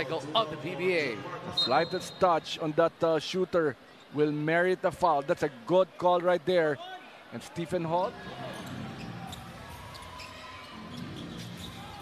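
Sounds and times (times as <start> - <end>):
arena crowd murmur: 0.0 - 3.8.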